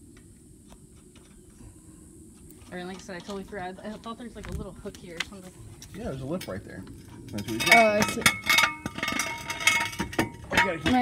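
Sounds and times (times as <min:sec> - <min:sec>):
metal car jack clinking: 0:07.3 - 0:11.0.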